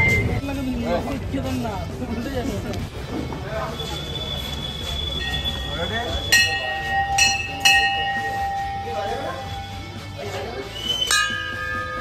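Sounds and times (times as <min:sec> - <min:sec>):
sustained bell tone: 0:05.1 - 0:10.0, 0:11.1 - 0:12.0
brass bells ringing: 0:05.2 - 0:10.0, 0:11.1 - 0:12.0.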